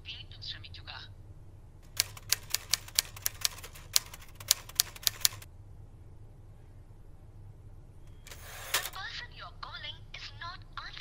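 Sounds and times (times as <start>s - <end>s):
keyboard key clicks: 1.9s - 5.5s.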